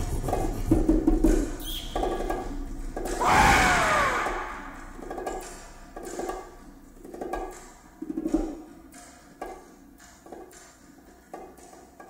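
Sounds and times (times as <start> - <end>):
pitched call gliding downward: 3.2 - 5.0
bass drum strokes: 3.2 - 5.2.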